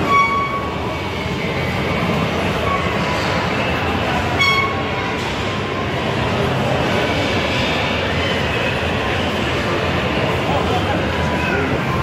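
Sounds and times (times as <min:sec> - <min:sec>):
shopping mall crowd din: 0:00.0 - 0:12.0.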